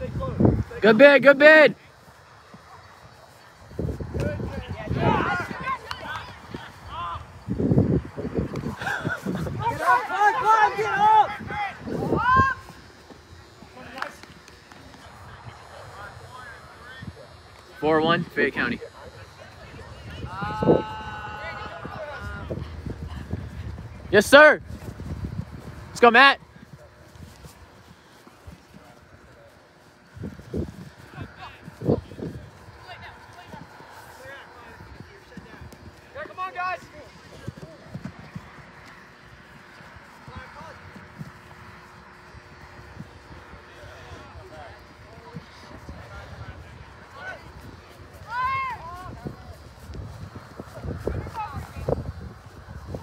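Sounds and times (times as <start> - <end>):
distant players shouting: 0.0 - 7.5, 8.5 - 17.4, 18.8 - 24.6, 25.7 - 49.8.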